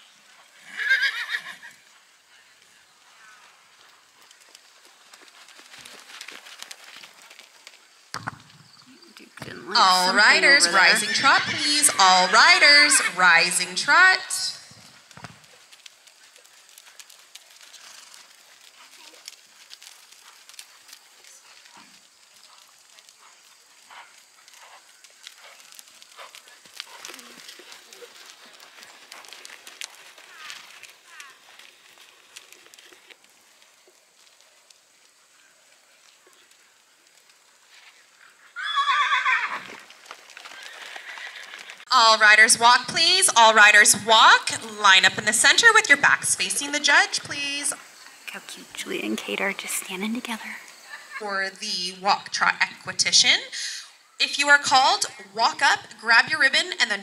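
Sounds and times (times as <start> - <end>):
horse whinnying: 0.6 - 1.8, 9.7 - 14.9, 38.5 - 41.9
faint hoofbeats on sand: 1.6 - 38.6.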